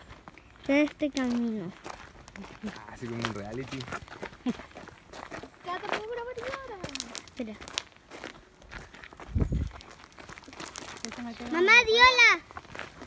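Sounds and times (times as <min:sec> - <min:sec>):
footsteps on gravel: 0:00.0 - 0:13.0.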